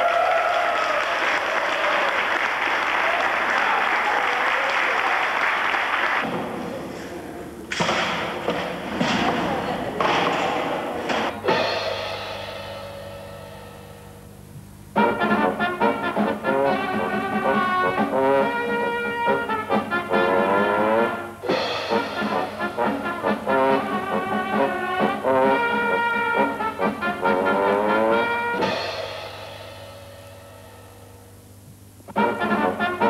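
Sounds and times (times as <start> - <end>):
cymbal crashes: 7.8 - 14.4, 21.4 - 24.4, 28.6 - 31.4
brass music with sliding notes: 14.9 - 30.4, 32.1 - 33.0.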